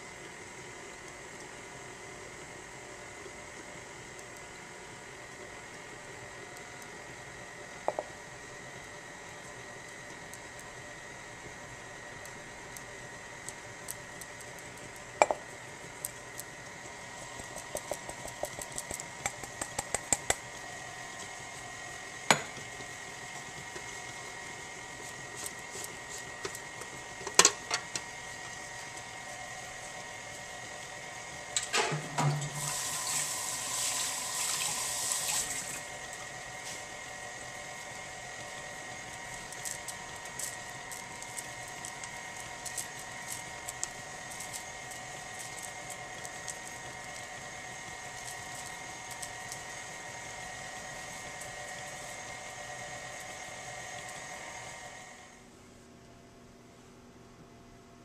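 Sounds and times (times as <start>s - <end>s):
stand mixer beating batter: 0.0s - 31.6s, 32.3s - 55.4s.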